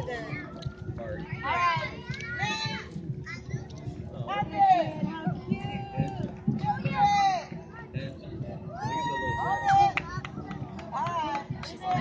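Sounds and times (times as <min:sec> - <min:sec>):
busy background noise: 0:00.0 - 0:12.0.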